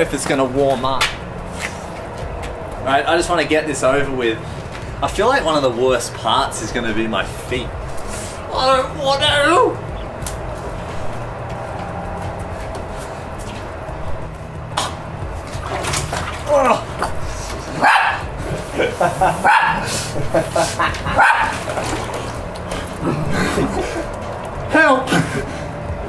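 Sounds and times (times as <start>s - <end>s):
small dog barking and yipping: 17.8s - 18.3s, 19.4s - 19.8s, 21.2s - 21.6s.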